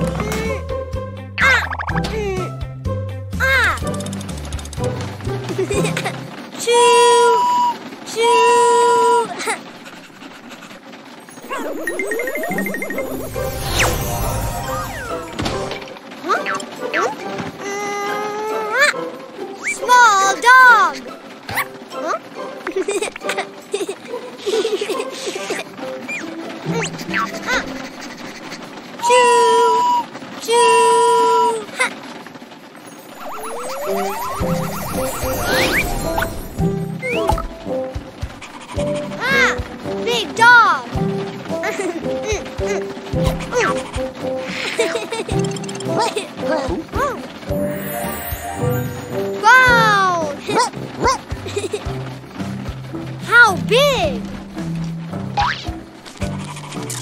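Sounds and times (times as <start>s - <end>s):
light children's music: 0.0s - 8.0s, 11.2s - 30.4s, 32.8s - 57.0s
toy train whistle toots: 7.1s - 7.8s, 29.0s - 30.2s
rising whistle effect with clicking: 33.1s - 36.4s.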